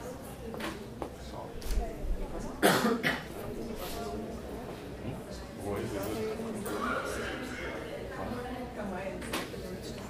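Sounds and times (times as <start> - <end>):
murmur of voices: 0.0 - 10.0
person coughing: 2.6 - 3.3.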